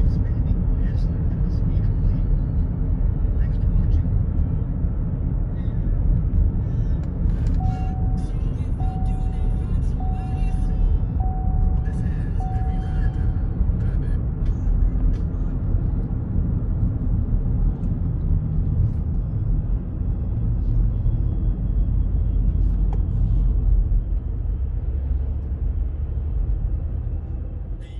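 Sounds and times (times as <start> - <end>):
car road noise rumble: 0.0 - 27.9
short beeps: 7.6 - 13.4.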